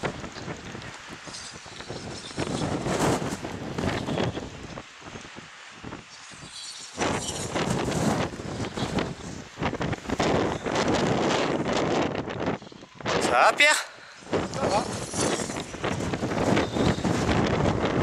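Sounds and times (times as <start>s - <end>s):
wind buffeting the microphone: 0.0s - 18.0s.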